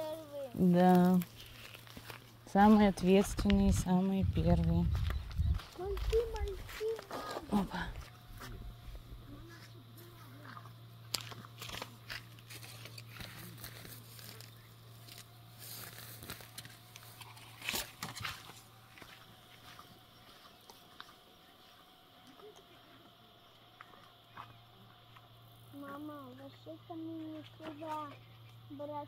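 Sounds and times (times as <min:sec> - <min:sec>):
steps on dry grass: 0:00.6 - 0:10.2, 0:11.1 - 0:22.1.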